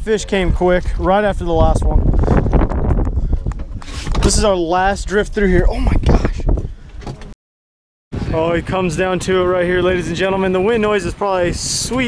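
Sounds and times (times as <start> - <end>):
wind buffeting microphone: 0.0 - 7.4, 8.1 - 12.0.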